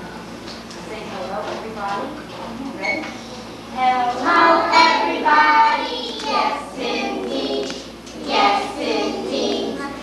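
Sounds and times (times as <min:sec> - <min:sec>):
children singing: 0:03.8 - 0:10.0.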